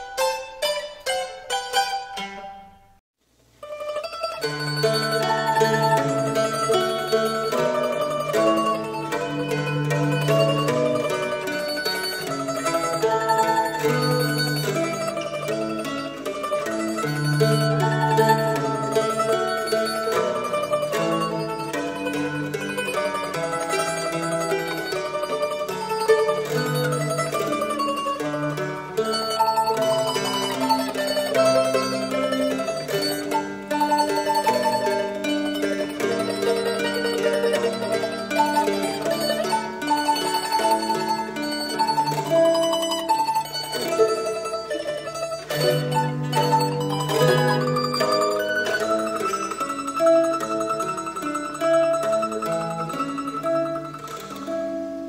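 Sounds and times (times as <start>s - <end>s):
mandolin and mandola duet: 0.0s - 55.0s.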